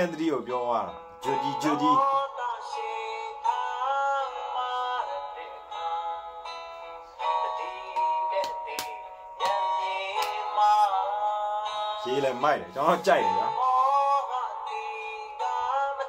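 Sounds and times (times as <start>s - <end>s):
pop song with high singing: 0.0s - 16.0s.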